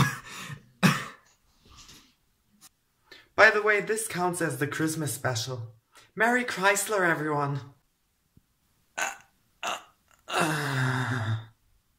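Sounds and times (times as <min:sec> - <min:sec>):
long low burp: 0:09.0 - 0:11.5
short vocal noises: 0:09.0 - 0:11.5.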